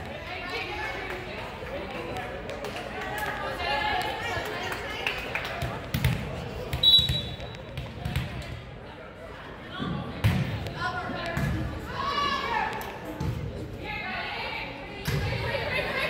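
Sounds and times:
chatter of spectators: 0.0 - 16.0
volleyball bouncing on gym floor: 5.5 - 8.6, 10.2 - 11.8.

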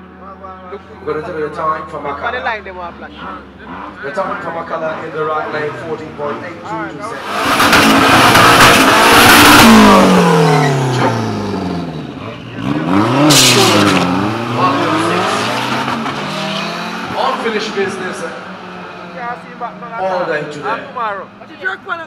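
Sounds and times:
racing car engines revving: 0.0 - 22.0.

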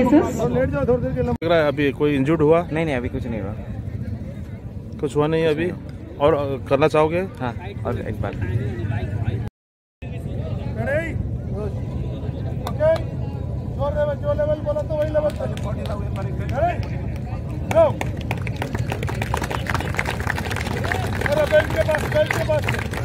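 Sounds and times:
crowd chatter and calls: 0.0 - 23.0.

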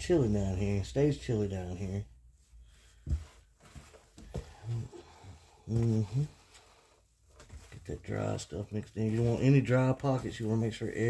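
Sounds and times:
hand stirring damp bedding: 4.4 - 11.0.

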